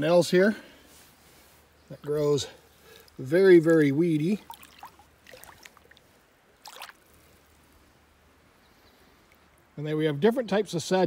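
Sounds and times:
low steady hiss: 0.0 - 11.0
river water splashing: 2.7 - 9.8.

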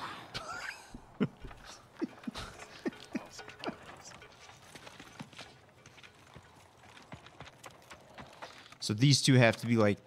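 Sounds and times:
film soundtrack: 0.0 - 10.0
faint steps on hard ground: 4.2 - 8.9.

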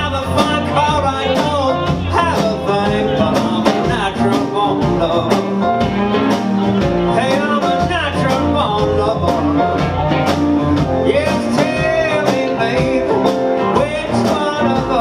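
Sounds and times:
blues band playing: 0.0 - 15.0.

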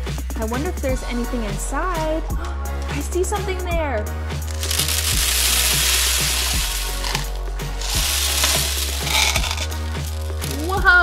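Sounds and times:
background music with steady beat: 0.0 - 11.0
plastic beads clattering on a table: 4.5 - 10.8.

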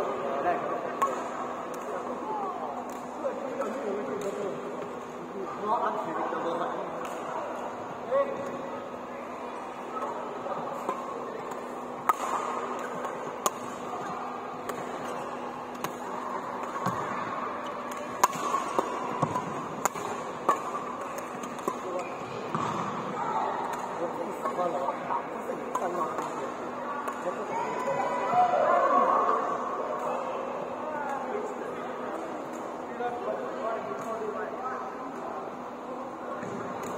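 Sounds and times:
echoing chatter: 0.0 - 36.9
rackets striking shuttlecock: 0.9 - 2.0, 2.8 - 4.5, 10.8 - 27.9.

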